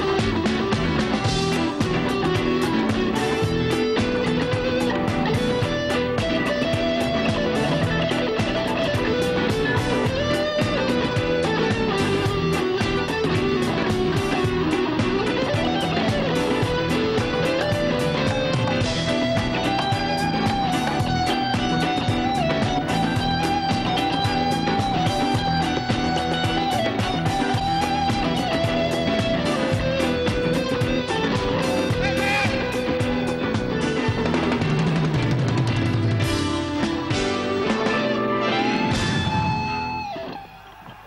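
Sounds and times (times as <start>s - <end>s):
lead guitar long high note: 0.0s - 41.0s
live band music: 0.0s - 41.0s.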